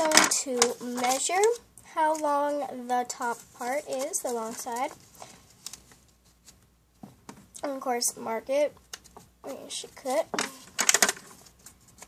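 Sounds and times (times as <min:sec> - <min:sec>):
paper rustling: 0:00.0 - 0:07.2, 0:08.9 - 0:12.0.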